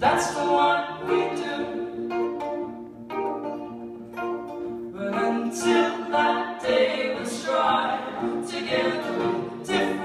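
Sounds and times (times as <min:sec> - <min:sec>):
voices singing in harmony: 0:00.0 - 0:02.2, 0:05.0 - 0:10.0
acoustic guitars: 0:00.0 - 0:10.0.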